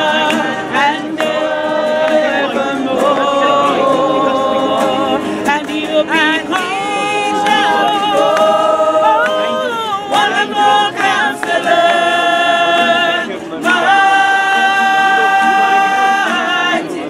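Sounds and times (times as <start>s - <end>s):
choir singing unaccompanied: 0.0s - 17.0s.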